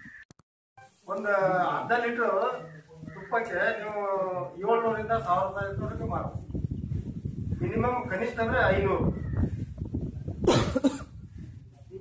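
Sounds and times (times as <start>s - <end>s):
man coughing: 10.4s - 11.2s.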